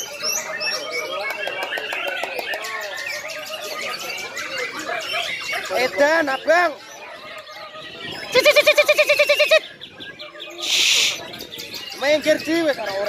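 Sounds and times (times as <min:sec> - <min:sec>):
birds singing: 0:00.0 - 0:13.0
people calling out: 0:08.2 - 0:09.6.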